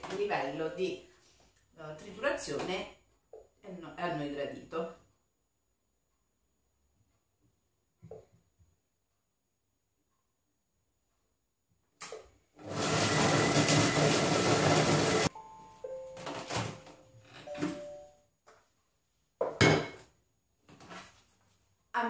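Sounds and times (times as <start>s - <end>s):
food processor chopping: 12.6s - 15.3s.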